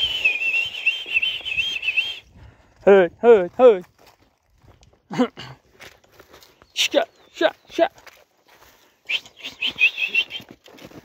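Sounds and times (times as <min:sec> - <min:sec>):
person whistling loudly: 0:00.0 - 0:02.3, 0:09.0 - 0:10.6.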